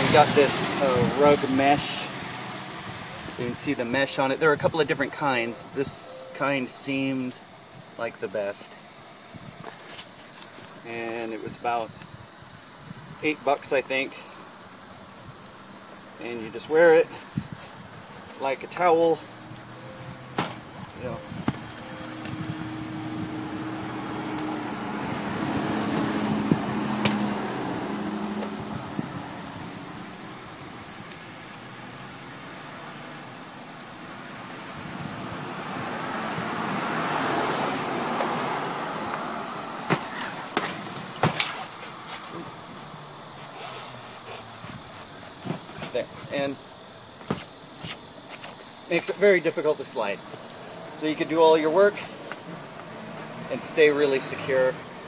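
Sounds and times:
insects chirping: 0.0s - 55.0s.

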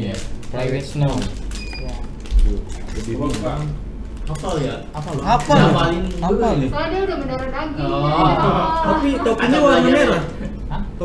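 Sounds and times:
foil packet crinkling and tearing: 0.0s - 6.4s.

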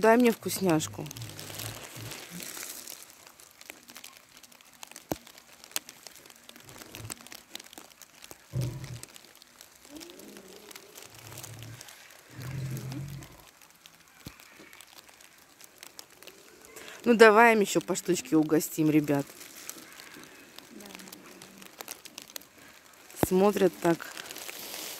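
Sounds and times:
crinkling and rustling: 0.0s - 24.9s.

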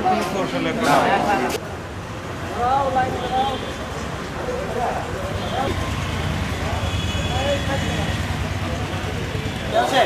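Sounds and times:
people talking indistinctly: 0.0s - 10.0s
road traffic rumble: 0.0s - 10.0s.

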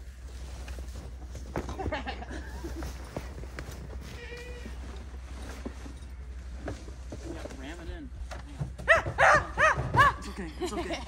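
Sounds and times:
dog barking: 8.9s - 10.2s.

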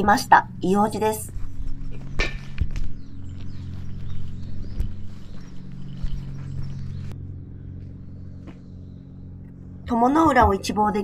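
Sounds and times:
steady low hum: 0.0s - 11.0s
footsteps on stone paving: 1.0s - 10.8s.

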